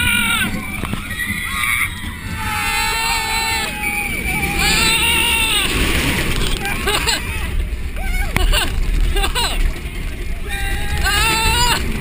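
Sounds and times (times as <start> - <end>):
riders screaming: 0.0 - 8.7, 10.4 - 12.0
roller coaster train on track: 0.0 - 12.0.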